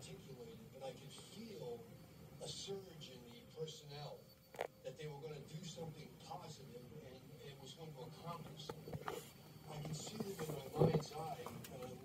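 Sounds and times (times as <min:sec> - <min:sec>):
indistinct television speech: 0:00.0 - 0:12.0.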